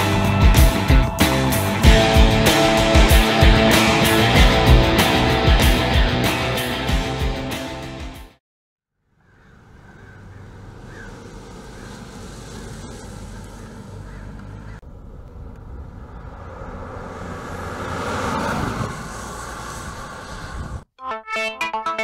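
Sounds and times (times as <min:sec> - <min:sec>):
car driving past: 0:09.6 - 0:20.8.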